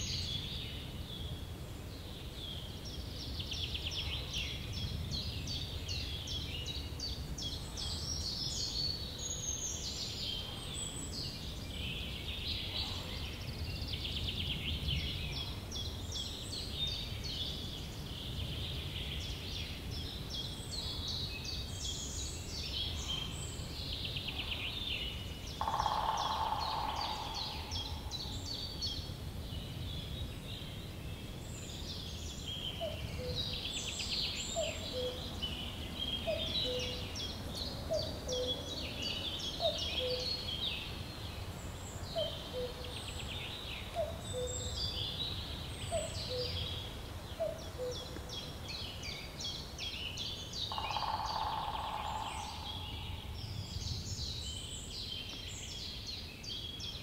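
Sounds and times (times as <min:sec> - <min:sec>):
birds singing and chattering: 0:00.0 - 0:57.0.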